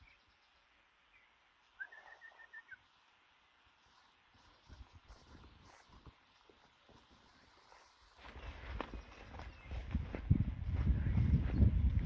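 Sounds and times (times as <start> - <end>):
bird chirps: 0.0 - 3.1, 8.2 - 10.0
bird calling: 1.7 - 2.9.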